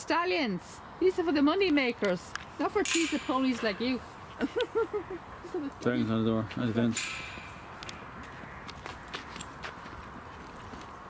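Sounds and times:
outdoor background noise: 0:00.0 - 0:11.0
footsteps on grass: 0:07.8 - 0:11.0.

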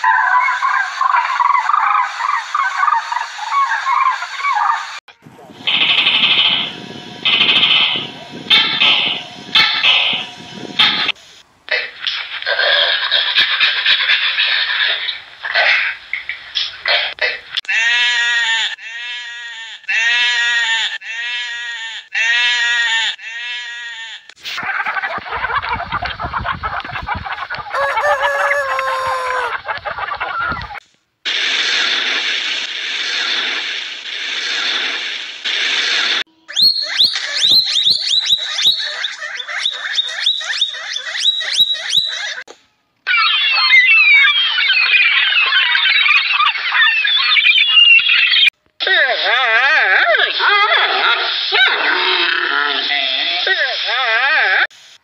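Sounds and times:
hissing noise with clicks: 0:05.6 - 0:12.6, 0:15.8 - 0:17.8, 0:30.6 - 0:36.3, 0:54.7 - 0:55.0
sheep bleating: 0:17.7 - 0:24.3
gulls calling: 0:25.2 - 0:30.8, 0:36.5 - 0:42.5.

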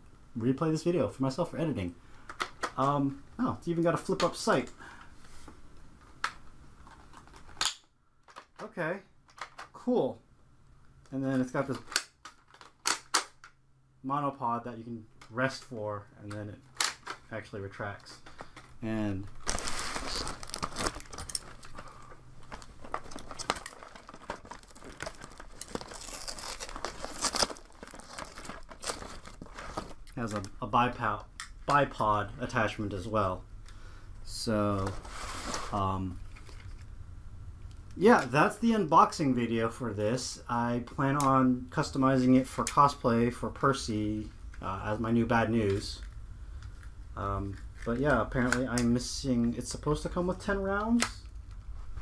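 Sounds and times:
cardboard box crinkling: 0:19.3 - 0:30.4.

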